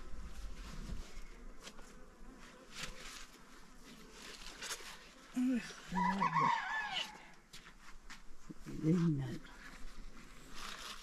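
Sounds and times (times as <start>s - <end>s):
soft rustles: 0.0s - 5.9s, 7.5s - 11.0s
insect buzzing faintly: 0.0s - 11.0s.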